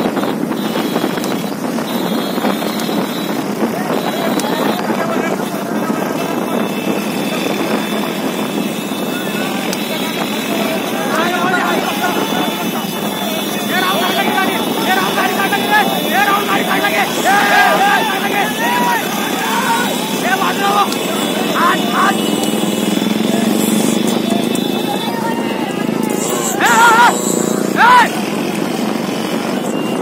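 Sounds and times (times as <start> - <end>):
motorcycle engines running: 0.0 - 30.0
men shouting: 3.6 - 28.5.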